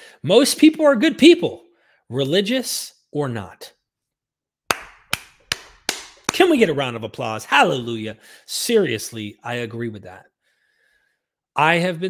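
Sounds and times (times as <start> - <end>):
man clapping hands: 4.7 - 6.7.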